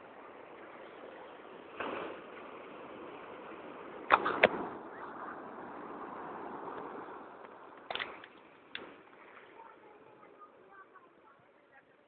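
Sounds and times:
sharp clicks: 7.8 - 8.9.

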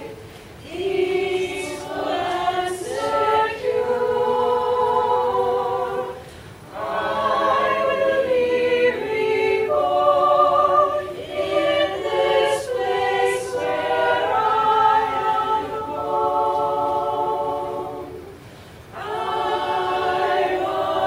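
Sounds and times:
women's choir singing: 0.0 - 21.0.

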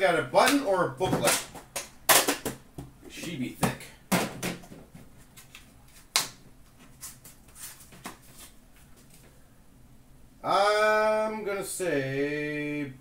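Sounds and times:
rustling: 4.6 - 9.4.

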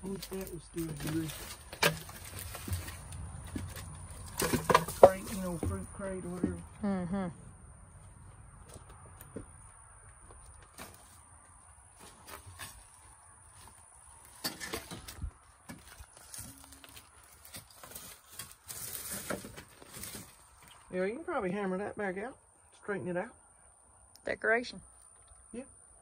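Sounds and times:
dry leaves crackling: 0.0 - 5.9, 15.7 - 20.9
footsteps in debris: 0.0 - 6.7, 8.0 - 20.9
boards knocking and clattering: 1.0 - 6.6.

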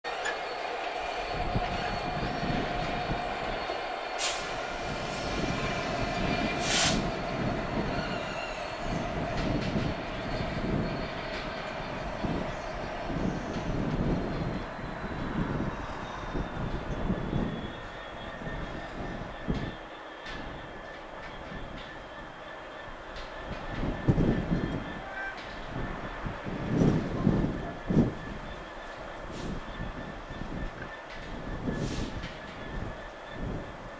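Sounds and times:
wheel squeal: 0.1 - 25.9
diesel locomotive engine pulsing: 0.1 - 33.9
short hisses: 6.6 - 7.0.

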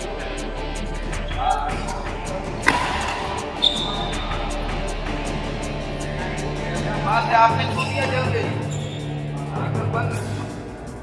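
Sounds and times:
background music: 0.0 - 11.0
racket hitting shuttlecock: 2.6 - 3.8
shoe squeak: 3.6 - 4.4, 8.6 - 9.2.

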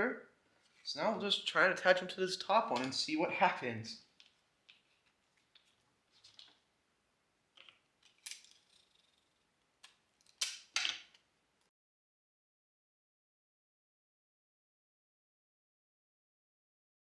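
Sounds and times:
paper rustling: 4.7 - 6.6.

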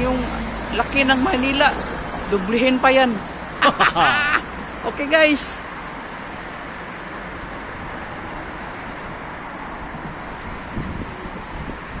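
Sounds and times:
street traffic: 0.0 - 12.0
wind buffeting microphone: 7.4 - 12.0.

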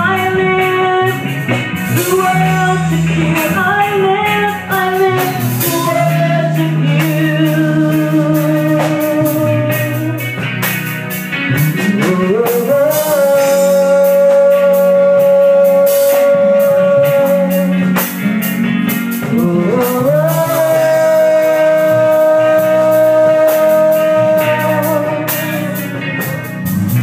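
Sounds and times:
woman singing into microphone: 0.0 - 10.4, 11.7 - 26.4
live band with drums: 0.0 - 27.0.

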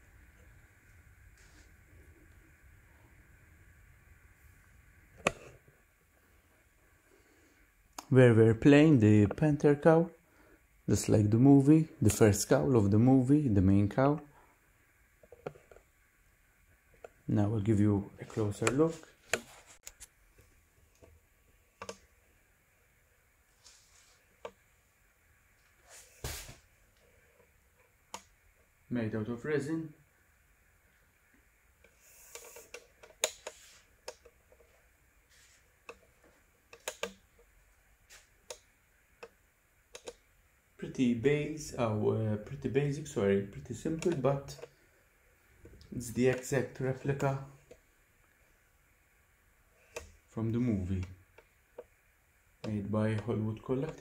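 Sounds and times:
soft hiss: 0.0 - 54.0
light clicks and ticks: 38.4 - 40.3, 43.9 - 44.8.

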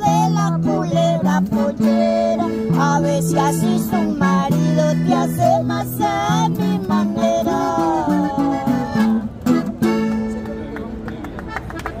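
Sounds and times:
woman singing: 0.0 - 9.4
acoustic guitars: 0.0 - 11.0.

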